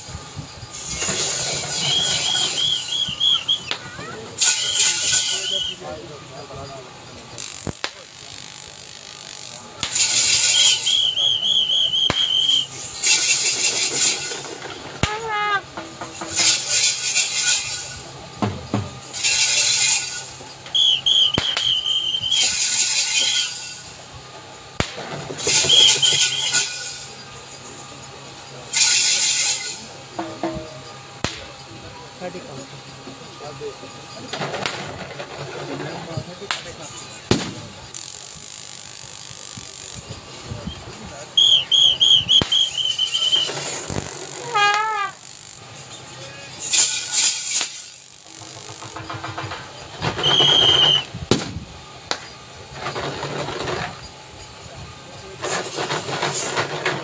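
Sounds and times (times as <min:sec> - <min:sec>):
trilling whistle blasts: 0:00.7 - 0:06.1, 0:09.4 - 0:14.3, 0:15.0 - 0:15.8, 0:19.2 - 0:23.9, 0:25.5 - 0:27.2, 0:40.6 - 0:45.3, 0:50.0 - 0:51.2
people shouting: 0:15.0 - 0:15.7.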